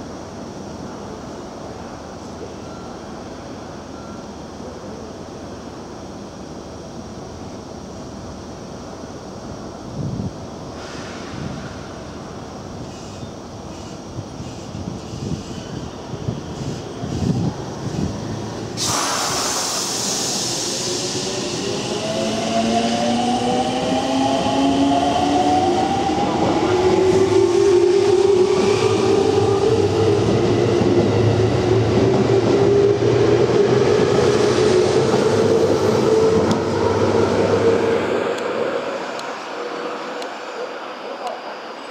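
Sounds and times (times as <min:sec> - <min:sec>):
train wheels on rails: 0:10.8 - 0:41.9
sudden rush of noise: 0:18.2 - 0:21.8.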